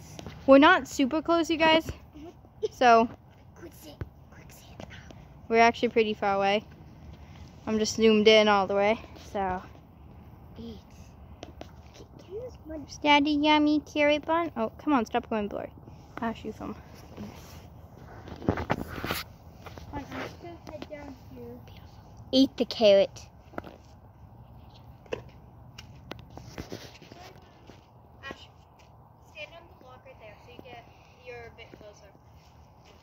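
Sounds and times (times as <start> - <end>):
faint background noise: 0.0 - 33.0.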